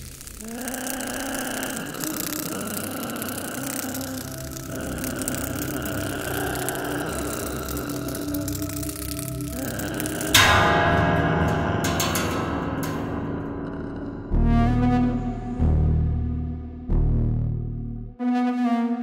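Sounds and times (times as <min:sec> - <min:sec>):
sustained horror score tones: 0:00.0 - 0:18.9.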